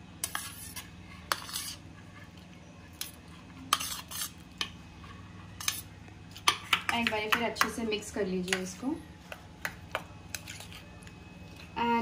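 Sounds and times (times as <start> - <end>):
spoon scraping a metal plate: 0.2 - 2.4, 3.0 - 6.9.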